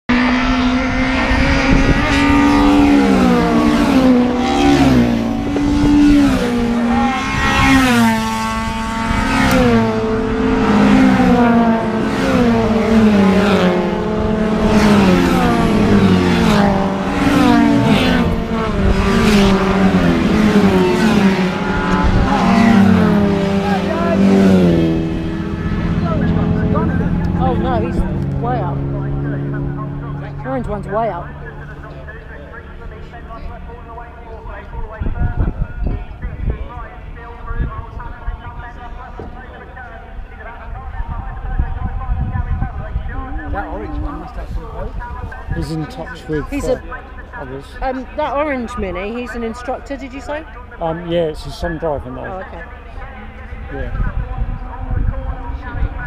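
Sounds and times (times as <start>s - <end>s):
racing car engines at full throttle: 0.1s - 56.0s.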